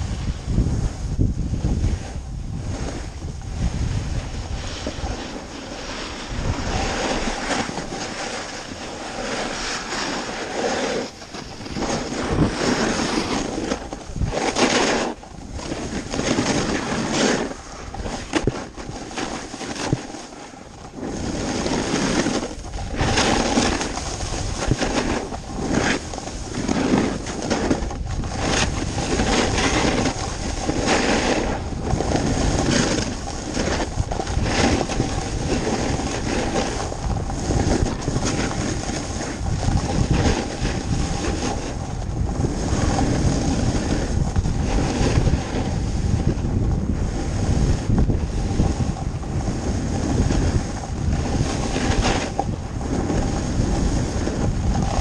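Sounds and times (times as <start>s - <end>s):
snowboard scraping on snow: 0.0s - 55.0s
wind on microphone: 0.0s - 55.0s.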